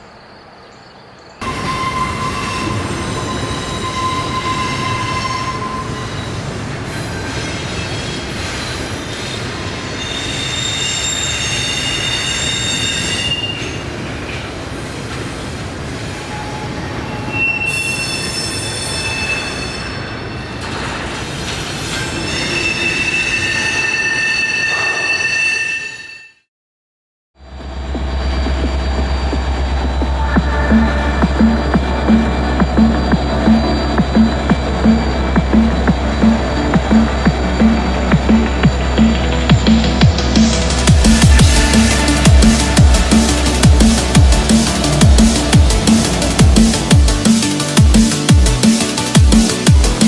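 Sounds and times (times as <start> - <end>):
train wheels squealing: 1.4 - 14.0, 15.4 - 26.4
train rumbling past: 1.4 - 22.6, 27.4 - 50.0.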